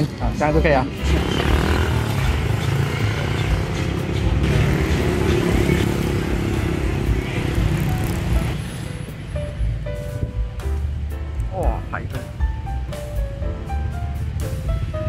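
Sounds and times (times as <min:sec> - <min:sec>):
background music: 0:00.0 - 0:15.0
street traffic rumble: 0:00.0 - 0:15.0.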